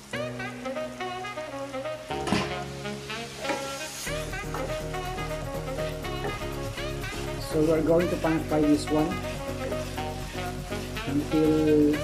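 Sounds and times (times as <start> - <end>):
background music: 0.0 - 12.0
meat sizzling in a pan: 0.0 - 12.0
wooden spatula stirring: 3.4 - 12.0.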